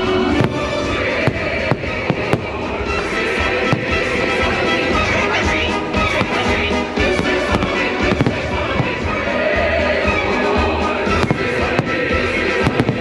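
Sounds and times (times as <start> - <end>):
fireworks bangs: 0.0 - 13.0
loud show music: 0.0 - 13.0.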